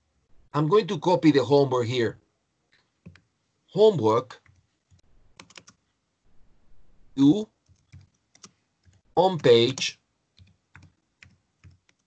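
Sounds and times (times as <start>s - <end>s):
computer keyboard typing: 4.4s - 5.8s, 7.6s - 12.0s.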